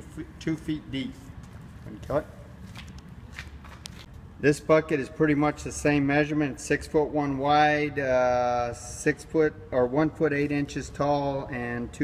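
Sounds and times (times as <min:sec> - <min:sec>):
footsteps on concrete: 0:01.4 - 0:04.2.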